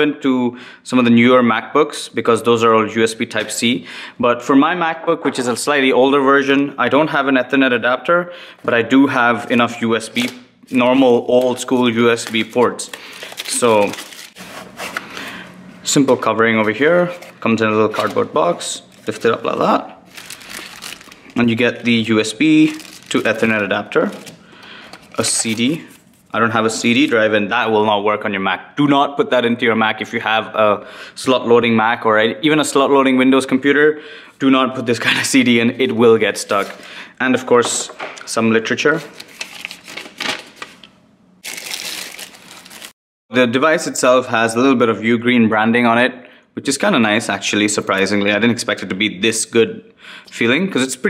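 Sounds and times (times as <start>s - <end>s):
plastic wrap rustling: 10.0s - 27.2s, 36.4s - 36.9s, 38.9s - 43.0s
plastic bag crinkling: 10.2s - 14.4s, 17.0s - 26.3s, 39.0s - 43.0s
cardboard box sliding from sleeve: 14.4s - 15.0s.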